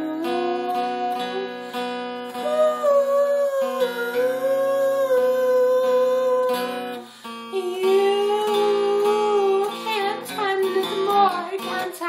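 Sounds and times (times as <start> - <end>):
man humming: 0.0 - 9.9
strummed acoustic guitar: 0.0 - 12.0.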